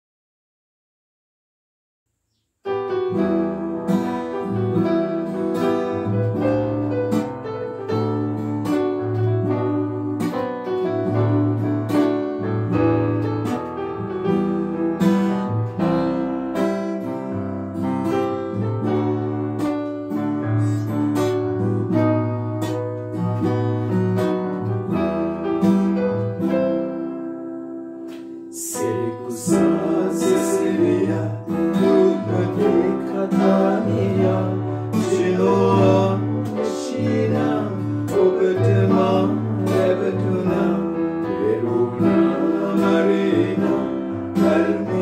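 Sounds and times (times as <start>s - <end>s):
acoustic guitar notes: 2.3s - 45.0s
electronic keyboard chords: 2.7s - 45.0s.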